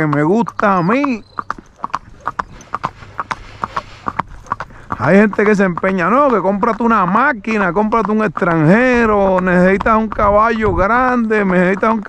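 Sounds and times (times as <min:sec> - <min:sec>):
hooves clip-clopping on asphalt: 0:00.0 - 0:12.0.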